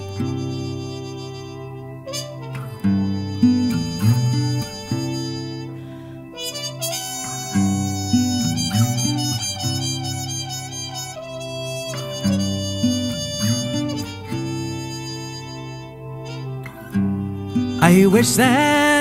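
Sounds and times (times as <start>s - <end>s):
harmonica melody: 0.0s - 19.0s
strummed acoustic guitar: 0.0s - 19.0s.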